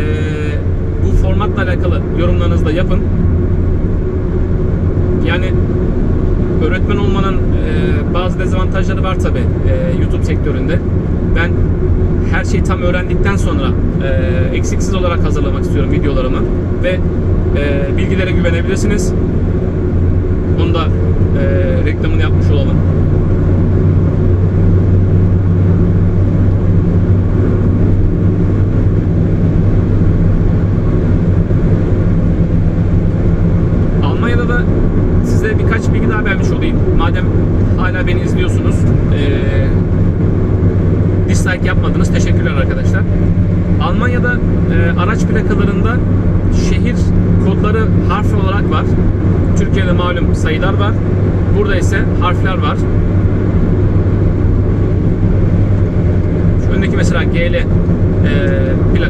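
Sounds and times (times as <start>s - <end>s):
car road and engine drone: 0.0s - 59.0s
person talking: 20.6s - 22.8s, 34.0s - 39.8s.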